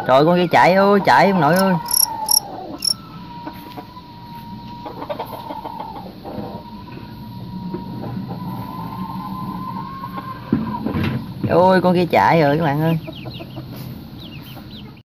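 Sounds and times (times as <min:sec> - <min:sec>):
thin high tone: 0:01.5 - 0:03.0
chickens clucking: 0:03.6 - 0:06.8, 0:12.8 - 0:15.0.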